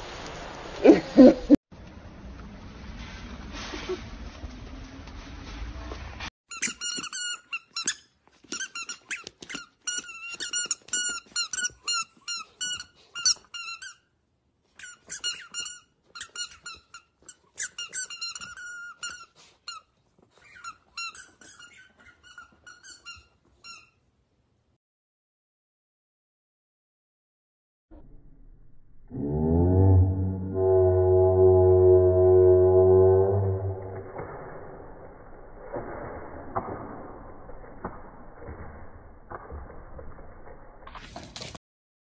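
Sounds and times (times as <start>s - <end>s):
squeaky dog toy squeaking: 6.5s - 14.1s, 14.8s - 24.0s.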